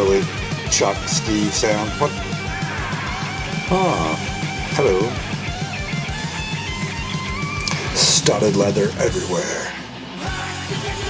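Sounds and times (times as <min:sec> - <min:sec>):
fast drum beat: 0:00.0 - 0:09.2
distorted rhythm guitar: 0:00.0 - 0:11.0
electric guitar lead: 0:00.0 - 0:11.0.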